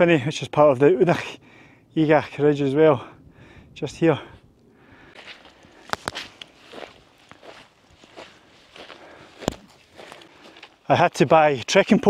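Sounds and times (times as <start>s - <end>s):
footsteps on rough dry ground: 4.2s - 12.0s.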